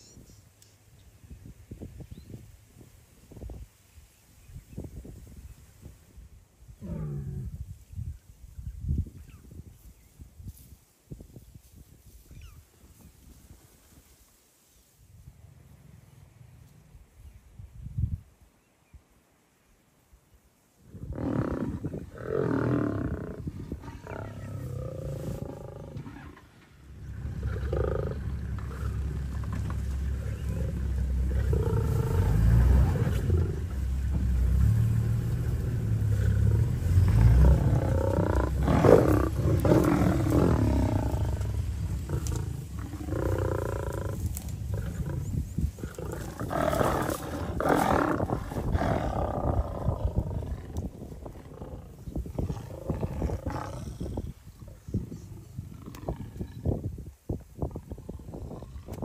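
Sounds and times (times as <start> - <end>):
big cats growling and snarling: 21.0 - 56.7
deep low rumble: 26.8 - 47.6.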